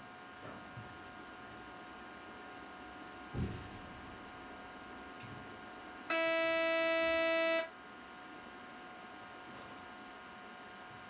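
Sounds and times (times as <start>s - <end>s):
steady warning tone: 6.1s - 7.8s.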